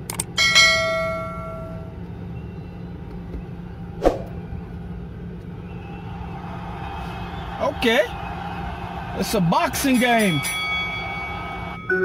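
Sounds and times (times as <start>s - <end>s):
steady low hum: 0.0s - 6.3s
bell ding: 0.4s - 1.9s, 10.0s - 12.0s.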